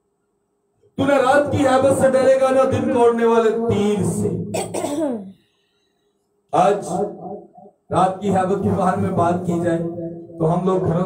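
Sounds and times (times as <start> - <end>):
man's amplified voice: 1.0 - 4.9, 6.5 - 7.2, 7.9 - 11.0
breathy cough or throat-clearing: 4.5 - 5.4.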